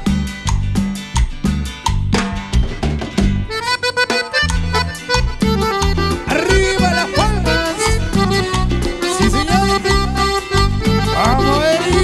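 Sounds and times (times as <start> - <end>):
bass: 0.0 - 12.0
guitar: 0.0 - 12.0
steady drum beat: 0.0 - 12.0
accordion melody: 3.2 - 12.0.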